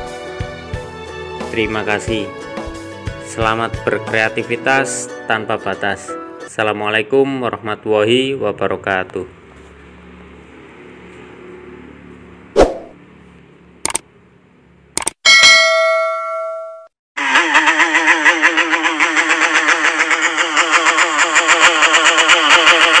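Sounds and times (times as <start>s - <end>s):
sharp hit sound effect: 12.6s - 13.0s
clicks: 13.8s - 14.0s, 15.0s - 15.2s
ringing ding: 15.2s - 17.0s.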